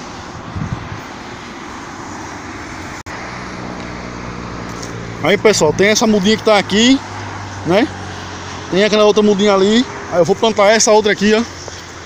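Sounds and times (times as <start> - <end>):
highway traffic noise: 0.0 - 12.0.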